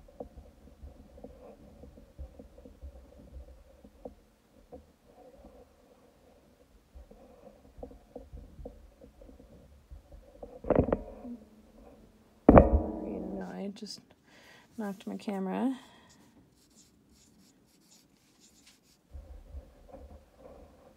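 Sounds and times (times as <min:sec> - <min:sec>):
low rumbling bumps: 0:08.3 - 0:13.7
loud thump on camera: 0:12.5 - 0:13.5
marker writing on whiteboard: 0:16.6 - 0:19.2.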